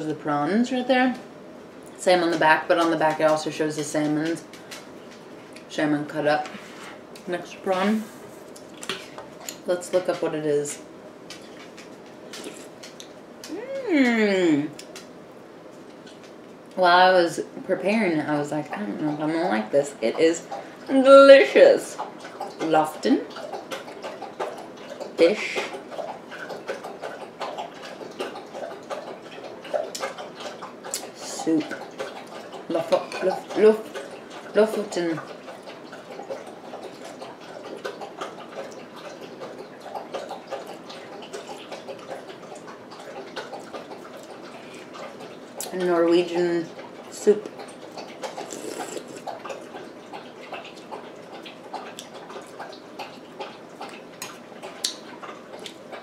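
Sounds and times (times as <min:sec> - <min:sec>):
person chewing food: 0:11.3 - 0:14.0, 0:23.3 - 0:34.5, 0:46.7 - 0:56.0
person eating with wet mouth sounds: 0:11.4 - 0:15.0, 0:46.7 - 0:56.0
wet mouth clicks: 0:47.5 - 0:49.7, 0:53.8 - 0:55.0.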